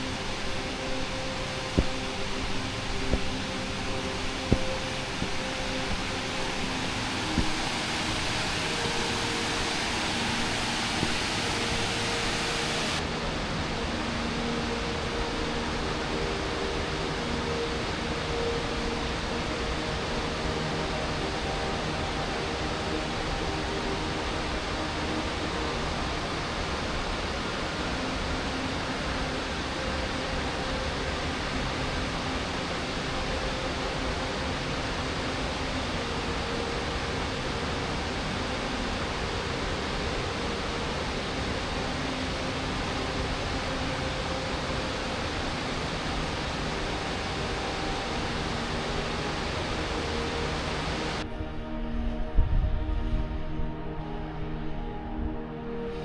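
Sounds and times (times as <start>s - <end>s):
waterfall roaring: 0.0s - 13.0s, 19.1s - 51.2s.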